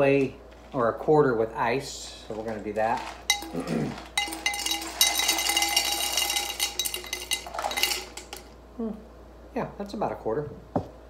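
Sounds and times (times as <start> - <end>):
ice cubes clinking into glass: 2.3 - 8.5.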